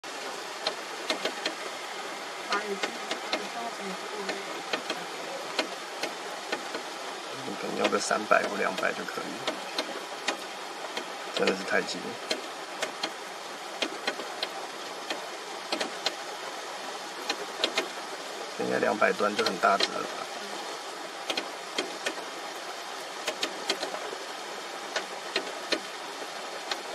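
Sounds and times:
aerator churning water: 0:00.1 - 0:16.1.

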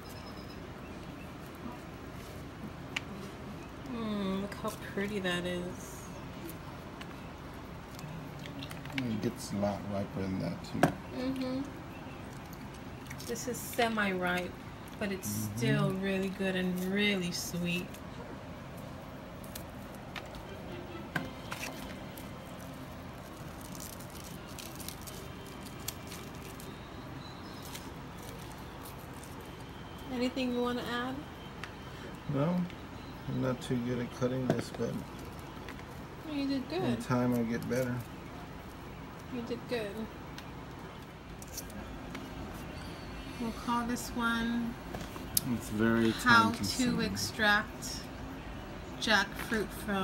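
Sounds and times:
steady background noise: 0:00.0 - 0:50.0
steady low hum: 0:00.0 - 0:50.0.

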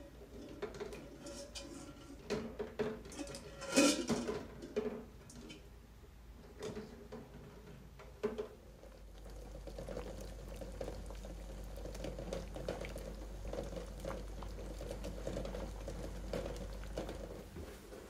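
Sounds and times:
water boiling in saucepan: 0:08.1 - 0:18.0.

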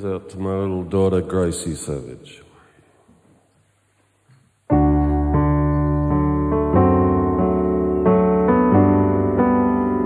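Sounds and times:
loud sustained piano chord: 0:04.7 - 0:10.0.

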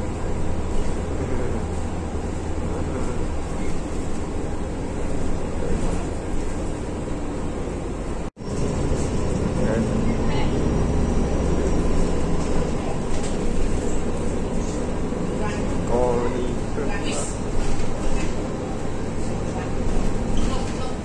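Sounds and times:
bus engine and road drone: 0:00.0 - 0:21.0.

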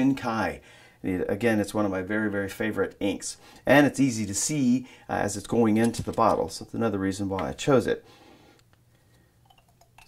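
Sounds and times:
bottle caps ticking: 0:09.4 - 0:10.0.

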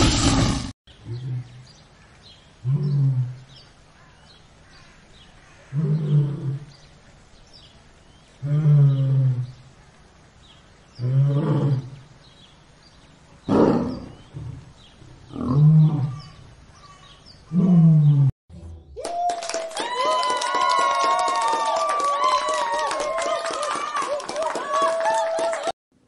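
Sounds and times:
lion roaring: 0:02.6 - 0:03.5, 0:05.7 - 0:06.7, 0:08.4 - 0:09.6, 0:11.0 - 0:12.0, 0:13.5 - 0:16.4.

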